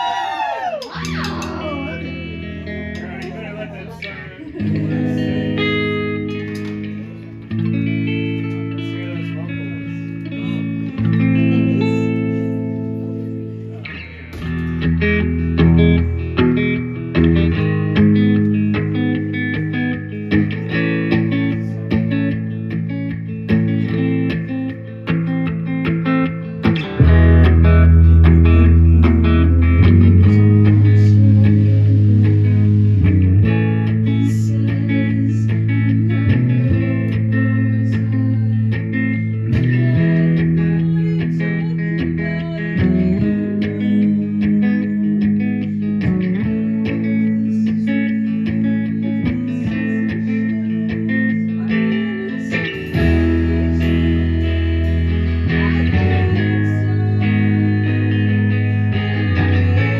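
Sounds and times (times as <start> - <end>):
rock band playing: 1.0 - 44.0, 44.6 - 59.9
heavy bass line: 1.1 - 59.9.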